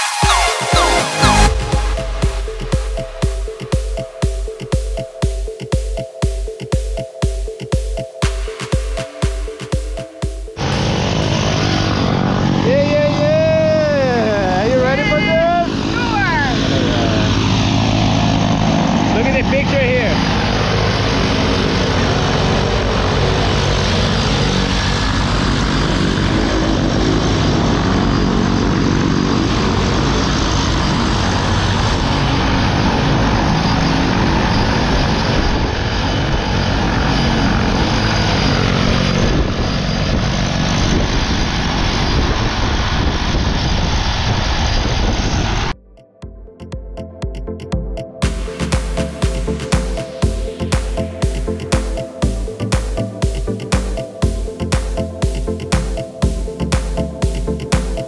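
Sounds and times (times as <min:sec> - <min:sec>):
propeller plane engine drone: 0:00.0 - 0:58.0.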